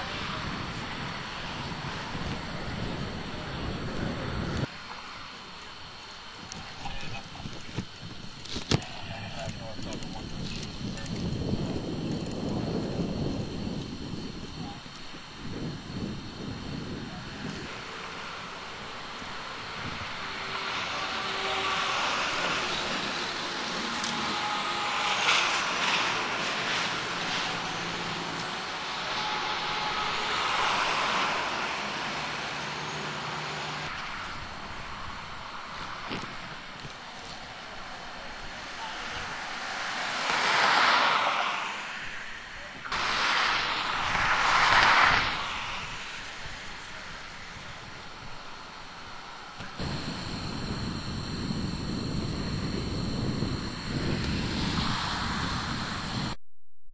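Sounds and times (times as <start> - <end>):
highway traffic passing: 17.5 - 56.1.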